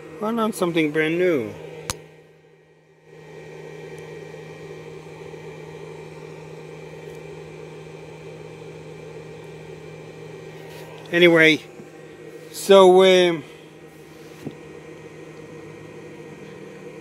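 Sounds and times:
low electrical hum: 0:00.0 - 0:17.0
machine whir: 0:03.0 - 0:17.0.

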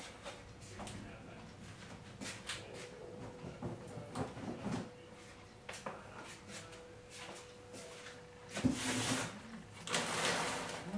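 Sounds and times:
faint steady hum: 0:00.0 - 0:10.9
faint knocks and handling noises: 0:00.1 - 0:10.6.

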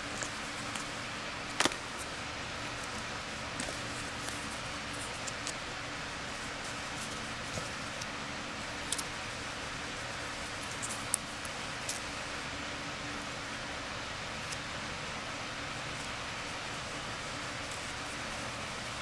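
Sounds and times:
steady hiss: 0:00.0 - 0:19.0.

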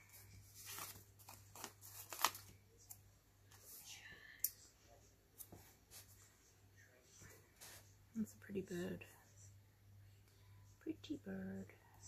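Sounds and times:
paper crackle: 0:00.0 - 0:03.6
sticker paper rustling: 0:00.0 - 0:03.8.

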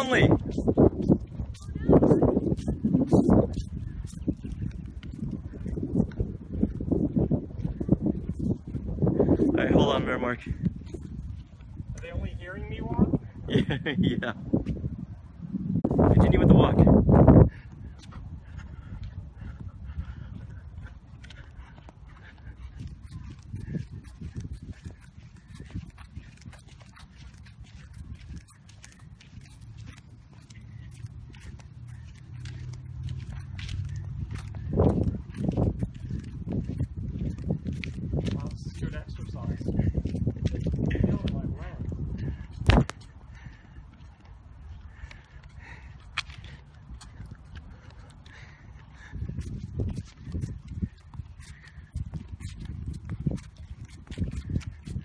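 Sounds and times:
footsteps on pavement: 0:00.0 - 0:55.0.

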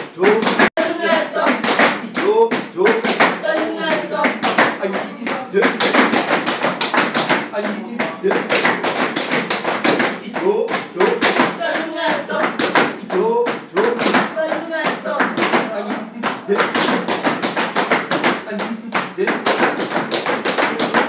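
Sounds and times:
hands slapping rubber boots: 0:01.4 - 0:11.6.

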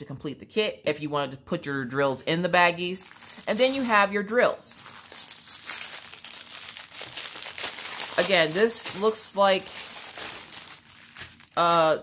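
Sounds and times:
plastic packaging crinkling: 0:03.0 - 0:12.0.

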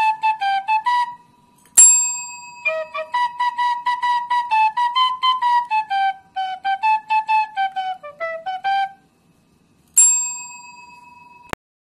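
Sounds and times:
service desk bell ringing: 0:01.7 - 0:02.7, 0:10.0 - 0:11.6.

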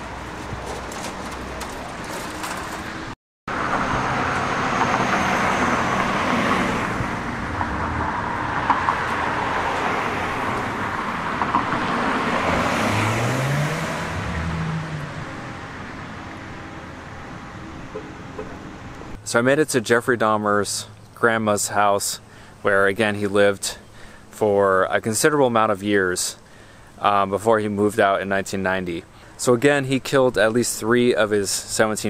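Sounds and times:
vehicle engine passing: 0:00.0 - 0:19.2
cars driving past: 0:00.0 - 0:19.4.

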